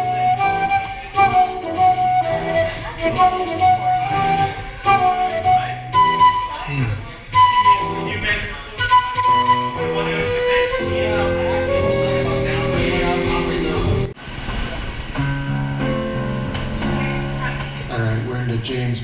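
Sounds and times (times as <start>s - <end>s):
flute melody: 0.0s - 14.2s
bass line: 9.2s - 14.2s.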